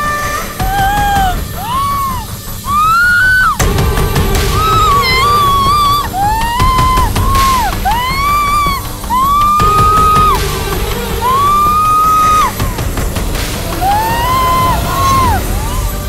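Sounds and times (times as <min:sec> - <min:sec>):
high wailing melody: 0:00.0 - 0:16.0.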